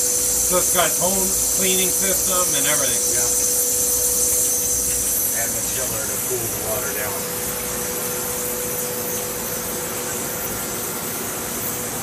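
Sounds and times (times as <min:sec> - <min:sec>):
machine hum: 0:00.0 - 0:12.0
water jet hissing: 0:00.0 - 0:12.0.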